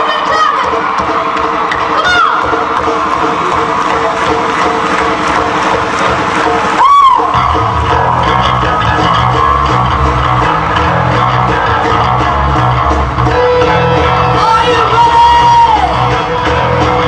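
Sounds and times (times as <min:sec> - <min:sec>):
bass and drums: 0:00.0 - 0:17.0
crowd cheering: 0:00.0 - 0:17.0
high whoop falling in pitch: 0:06.8 - 0:07.6
guitar and keyboard tones: 0:07.3 - 0:17.0.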